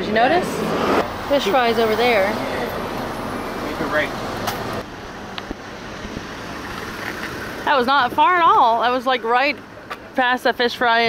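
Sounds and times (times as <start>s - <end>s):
minibus road noise from inside: 0.0s - 10.3s.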